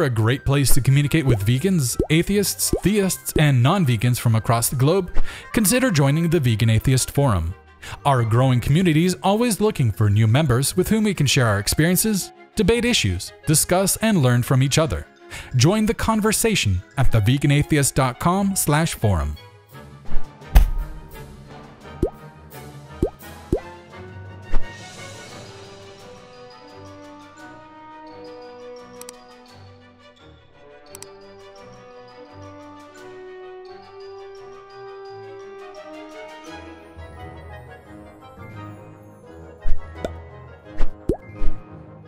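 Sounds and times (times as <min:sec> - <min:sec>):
background music: 0:00.0 - 0:42.0
cartoon pop sound effects: 0:20.1 - 0:21.0, 0:23.0 - 0:23.6, 0:40.8 - 0:41.6
short hits: 0:20.5 - 0:21.2.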